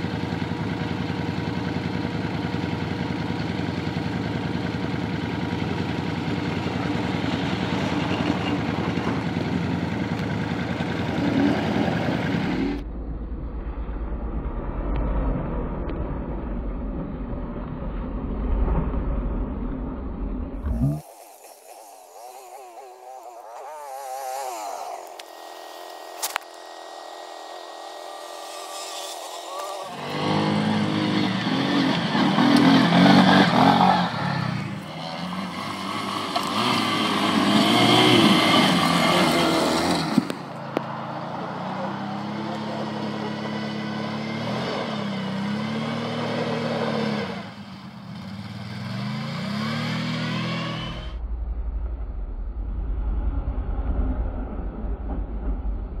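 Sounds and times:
quad bike engine revving: 0:00.0 - 0:12.8, 0:20.6 - 0:51.2.

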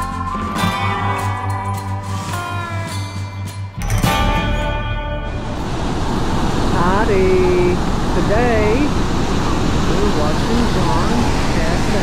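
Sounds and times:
guitar music: 0:00.0 - 0:11.4.

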